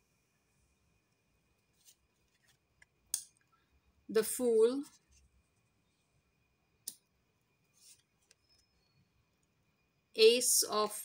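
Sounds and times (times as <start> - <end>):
papery brush of cards: 7.7 - 8.1.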